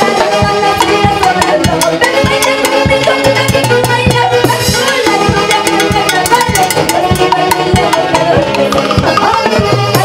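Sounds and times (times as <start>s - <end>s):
saxophones playing melody: 0.0s - 10.0s
timbales and drums beat: 0.0s - 10.0s.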